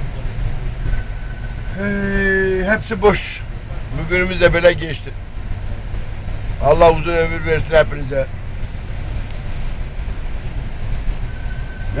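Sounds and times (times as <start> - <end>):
bus engine rumble: 0.0 - 12.0
road noise: 0.0 - 12.0.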